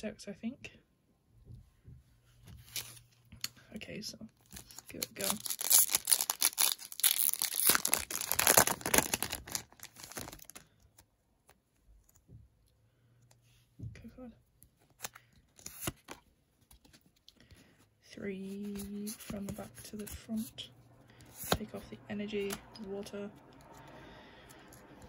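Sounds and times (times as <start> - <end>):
foil wrapper tearing and crinkling: 4.5 - 10.7.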